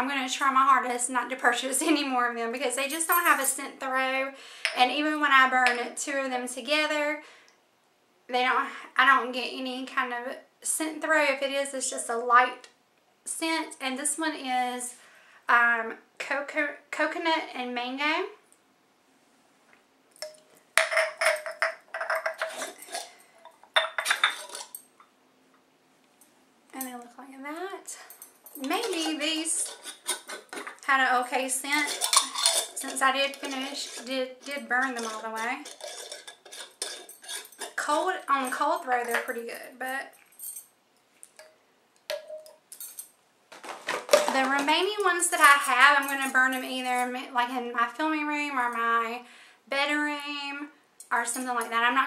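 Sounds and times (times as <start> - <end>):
metal tins clinking and scraping: 20.2 - 24.9, 28.5 - 39.4, 42.1 - 46.6.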